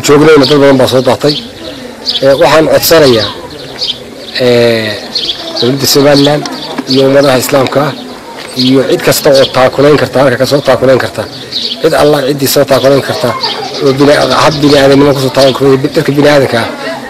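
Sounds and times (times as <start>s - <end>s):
man speaking: 0.0s - 3.5s, 4.3s - 17.0s.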